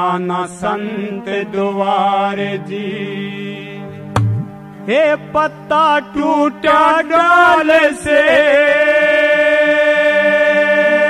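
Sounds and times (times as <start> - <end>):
low accompanying tone: 3.9 - 4.9
man singing a long note: 4.9 - 11.0.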